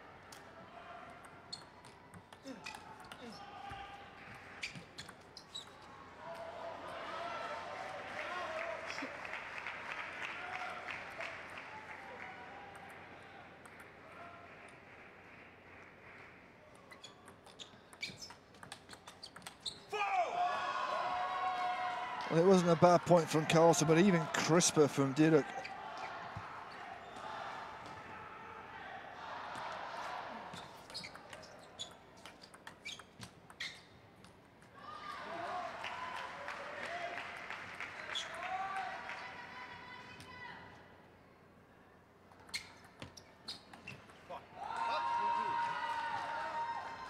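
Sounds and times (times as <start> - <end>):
table tennis ball clicking: 17.2 - 19.6, 30.8 - 33.6
crowd noise and calls: 21.1 - 32.1.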